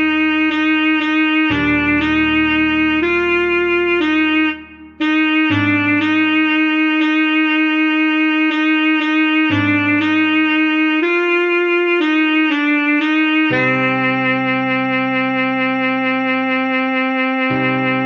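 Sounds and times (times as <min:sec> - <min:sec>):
backing accompaniment: 0:00.0 - 0:15.8
alto saxophone melody: 0:00.0 - 0:18.0.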